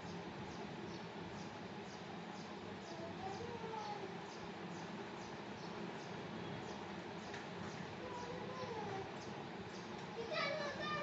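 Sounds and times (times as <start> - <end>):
young child talking: 2.8 - 4.2, 8.0 - 9.2, 10.0 - 11.0.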